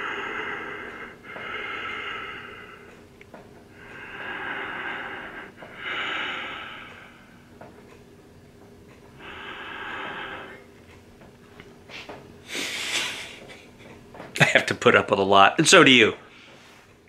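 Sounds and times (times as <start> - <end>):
man breathing heavily: 0.0 - 7.7, 9.1 - 10.9, 11.9 - 13.7.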